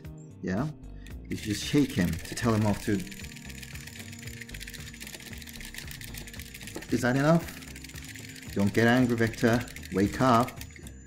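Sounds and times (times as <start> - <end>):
quiet background music: 0.0 - 11.0
small robot clicking and rattling: 1.4 - 10.9.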